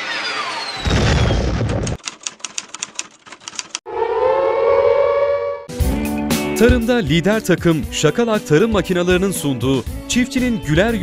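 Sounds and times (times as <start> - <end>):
fast run of ticks: 1.8 - 3.8
falling swept tones: 3.9 - 5.7
music: 5.7 - 11.0.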